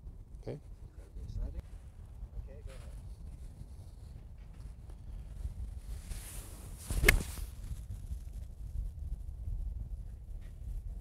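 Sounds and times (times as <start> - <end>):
golf club swishing: 5.9 - 7.8.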